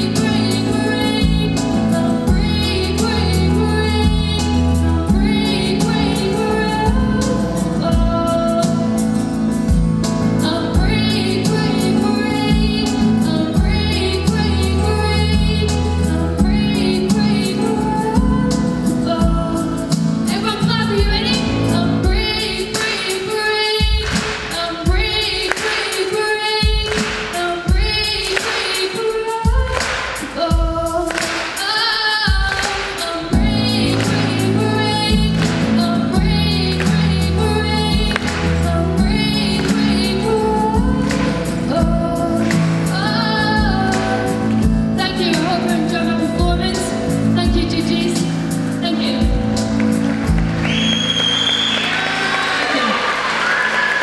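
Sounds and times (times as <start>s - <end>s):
girl singing into microphone: 0.0s - 49.6s
backing music with low beat: 32.3s - 51.0s
audience applause: 49.7s - 54.0s
high whistle-like tone: 50.6s - 52.0s.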